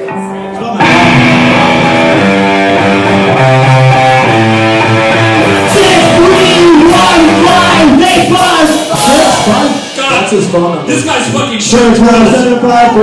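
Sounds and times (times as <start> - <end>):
electric guitar chords: 0.0 - 10.2
man singing: 5.6 - 9.9.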